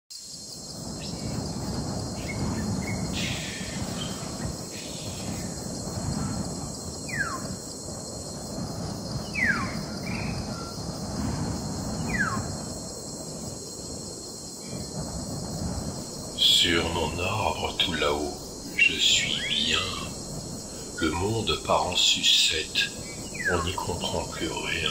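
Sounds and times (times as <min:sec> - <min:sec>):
steady high hiss: 0:00.1 - 0:24.9
low rumble: 0:00.8 - 0:24.9
falling whistled bird calls: 0:00.9 - 0:07.6, 0:09.2 - 0:10.8, 0:12.0 - 0:12.7, 0:16.2 - 0:24.9.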